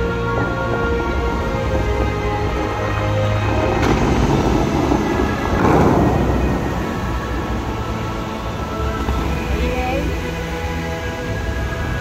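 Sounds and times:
music over loudspeakers: 0:00.0 - 0:12.0
rushing water: 0:00.0 - 0:12.0
water jets bursting: 0:00.0 - 0:12.0.

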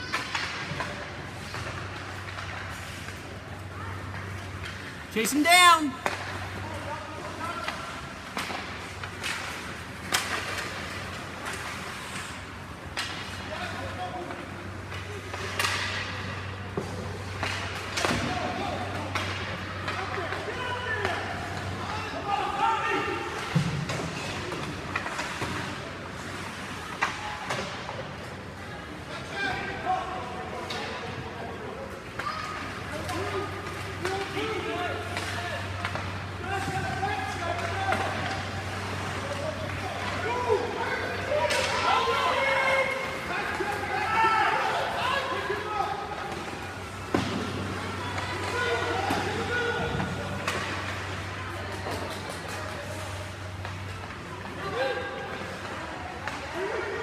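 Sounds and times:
spectators' voices and shouts: 0:03.6 - 0:09.5, 0:28.8 - 0:57.0.

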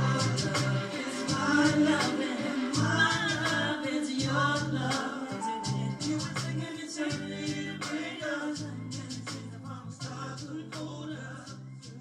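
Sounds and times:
music with pulsing low bass: 0:00.0 - 0:12.0.

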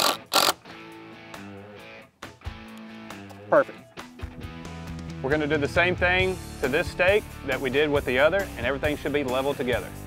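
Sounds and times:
cordless drill driving screw: 0:00.0 - 0:00.6
guitar music: 0:00.0 - 0:09.0.

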